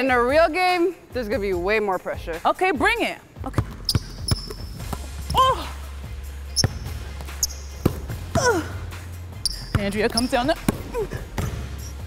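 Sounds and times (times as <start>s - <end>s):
basketball bouncing on hardwood floor: 3.5s - 5.0s, 7.8s - 8.5s, 9.7s - 11.7s
sneakers squeaking on court: 3.5s - 5.4s, 6.5s - 8.4s, 9.4s - 12.0s.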